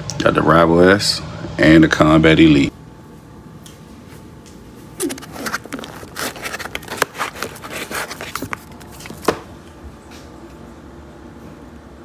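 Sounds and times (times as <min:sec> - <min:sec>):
pistol case handling scrapes: 0:05.0 - 0:09.2.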